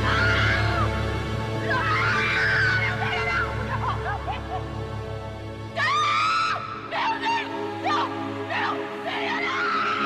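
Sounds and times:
dramatic orchestral score: 0.0s - 10.0s
sobbing cries: 1.7s - 4.6s.

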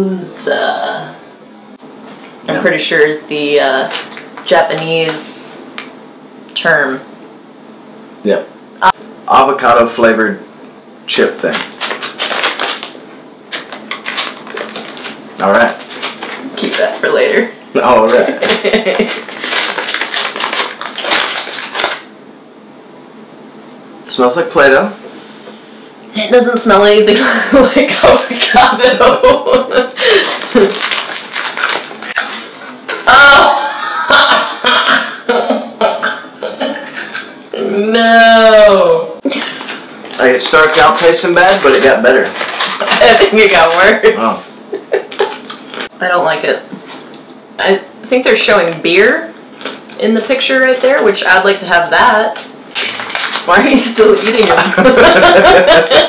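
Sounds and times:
plastic packaging crinkling: 3.8s - 5.2s, 11.4s - 17.1s, 18.1s - 22.1s, 30.0s - 33.0s, 39.3s - 43.8s, 52.4s - 56.0s
people laughing: 33.6s - 36.1s, 54.6s - 56.0s.

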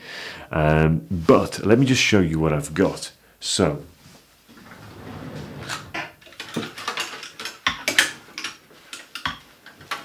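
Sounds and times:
sliding wardrobe door rumbling: 4.5s - 6.8s.

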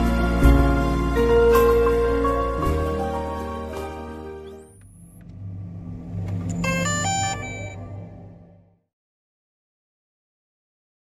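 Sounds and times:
low rumbling whoosh: 4.9s - 8.8s
electronic chime notes: 6.5s - 8.4s.

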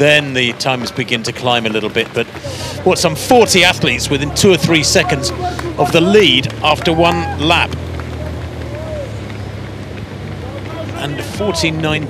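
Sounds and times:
rush of outdoor noise: 0.0s - 12.0s
vehicle engine hum: 0.0s - 12.0s.

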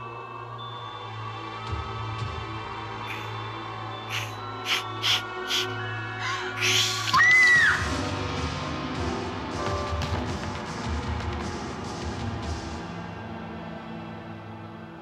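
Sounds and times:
woman screaming: 5.5s - 7.9s.

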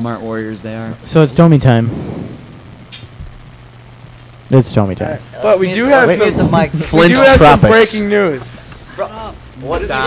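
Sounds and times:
faint hiss: 0.0s - 5.6s
low electrical hum: 0.0s - 10.0s
thin high whine: 0.8s - 9.0s.

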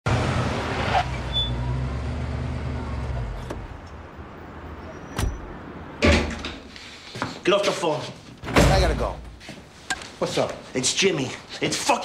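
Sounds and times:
engine humming: 0.1s - 6.0s.

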